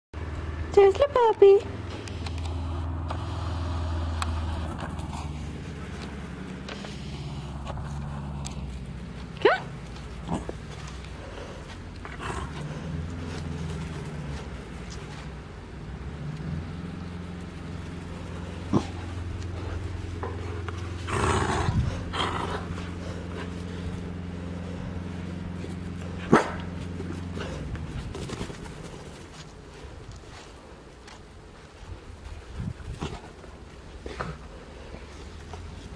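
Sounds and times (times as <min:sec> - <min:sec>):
low motor hum: 0:00.1 - 0:35.9
puppy growling: 0:09.4 - 0:14.6, 0:18.0 - 0:28.2
puppy barking: 0:26.3 - 0:26.7.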